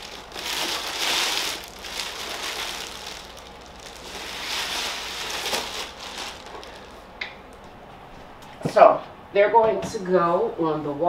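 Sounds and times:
plastic wrapping crinkling: 0.0s - 7.6s.

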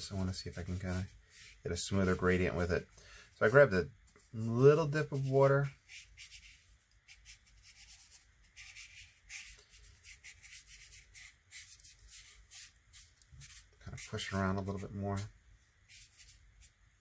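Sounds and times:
brush swishing on paper: 0.0s - 16.8s.

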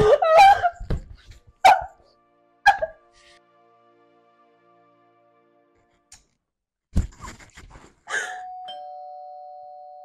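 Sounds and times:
soft background music: 0.1s - 6.2s.

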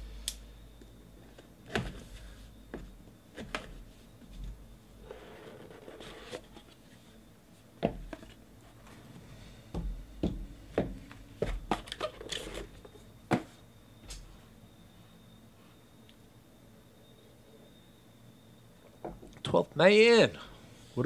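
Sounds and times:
cardboard sleeve sliding hiss: 5.0s - 6.6s.

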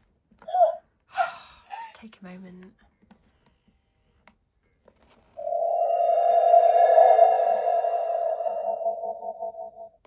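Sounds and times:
woman's breathy gasps: 1.1s - 1.9s.

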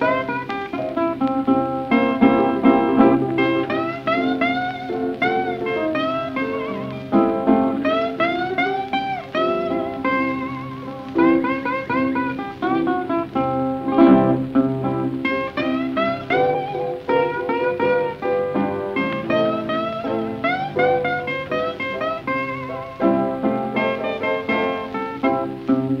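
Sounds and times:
blues guitar plucked melody: 0.0s - 26.0s.

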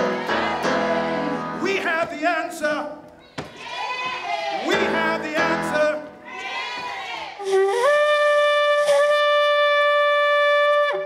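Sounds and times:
shofar blown in long note: 7.4s - 11.0s.

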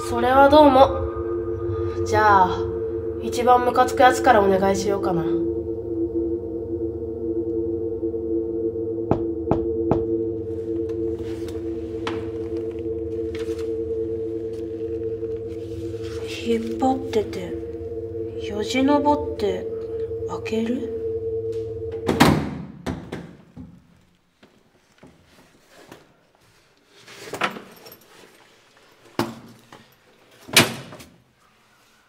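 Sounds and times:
eerie droning music: 0.0s - 22.7s
loud ringing thud: 0.8s - 22.7s.

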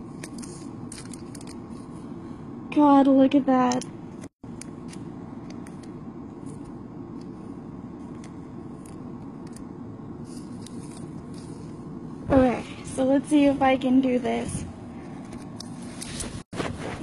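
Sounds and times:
steady background noise: 0.0s - 17.0s.

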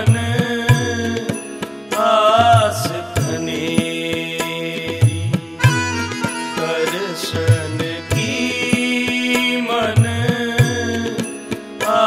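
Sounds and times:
tabla strokes: 0.0s - 12.0s
harmonium tones: 0.1s - 12.0s
man singing held note: 5.6s - 9.7s.

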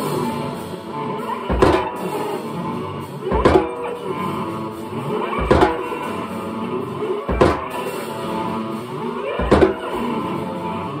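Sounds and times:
drum kit playing: 1.5s - 2.0s, 3.3s - 4.1s, 5.4s - 6.1s, 7.3s - 7.8s, 9.4s - 10.0s.

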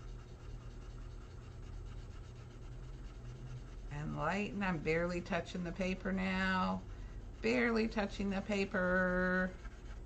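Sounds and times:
low steady hum: 0.0s - 10.0s
pencil scratching on paper: 0.0s - 10.0s.

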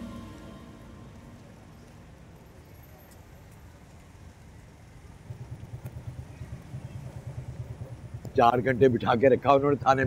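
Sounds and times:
motorcycle engine approaching: 5.3s - 10.0s.

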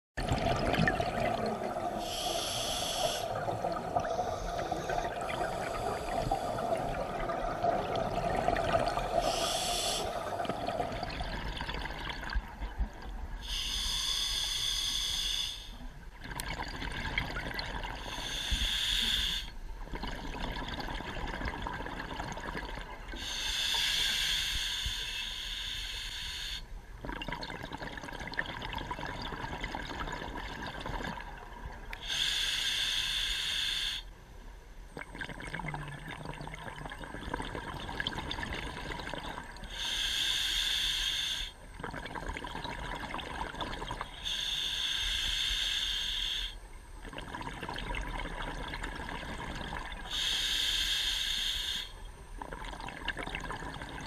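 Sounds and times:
exhaled air bubbling: 0.2s - 14.5s, 16.0s - 23.5s, 27.0s - 32.3s, 34.9s - 40.2s, 41.6s - 44.6s, 46.9s - 50.6s, 52.3s - 54.0s
regulator inhalation hiss: 2.0s - 3.4s, 9.2s - 10.3s, 13.4s - 15.8s, 18.0s - 19.6s, 23.2s - 26.7s, 32.0s - 34.1s, 39.7s - 41.6s, 44.2s - 46.6s, 50.1s - 52.0s.

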